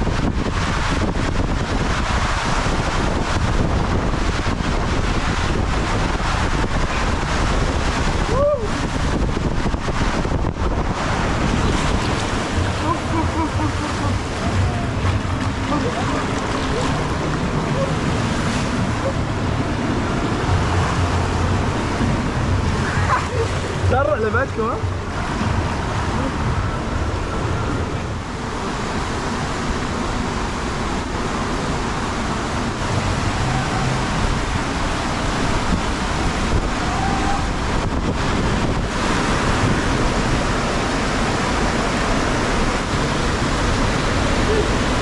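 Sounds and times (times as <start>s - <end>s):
turbulent water rushing: 0.0s - 45.0s
wind buffeting microphone: 0.0s - 45.0s.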